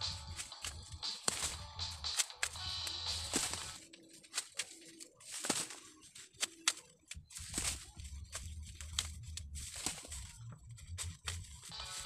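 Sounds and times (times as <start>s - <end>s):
background music: 0.0s - 4.5s, 7.1s - 12.0s
corn ears snapping: 0.0s - 12.0s
corn stalks rustling: 0.0s - 12.0s.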